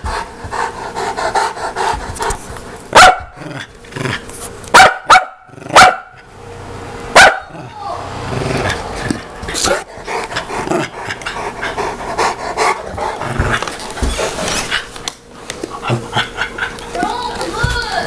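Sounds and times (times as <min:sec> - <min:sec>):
dogs play growling: 0:00.0 - 0:04.6, 0:05.5 - 0:05.8, 0:07.5 - 0:17.0
dogs barking: 0:02.9 - 0:03.4, 0:04.7 - 0:06.3, 0:07.1 - 0:07.6.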